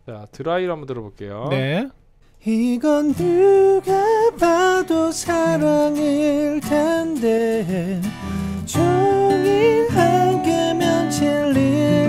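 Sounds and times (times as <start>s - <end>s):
person singing: 2.5s - 12.0s
strummed guitar: 2.7s - 12.0s.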